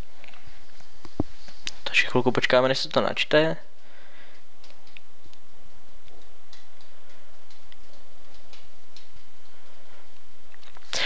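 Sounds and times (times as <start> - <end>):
steady low hum: 0.0 - 11.0
faint small ticks and clicks: 3.7 - 11.0.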